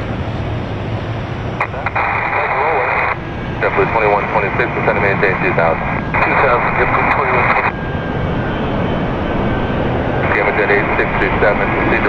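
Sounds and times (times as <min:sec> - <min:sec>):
jet engine rushing: 0:00.0 - 0:12.0
radio voice: 0:01.6 - 0:07.7, 0:10.2 - 0:12.0.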